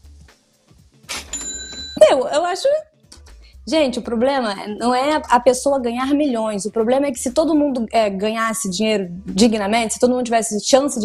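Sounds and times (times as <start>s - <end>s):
cash register ka-ching: 1.1s - 2.0s.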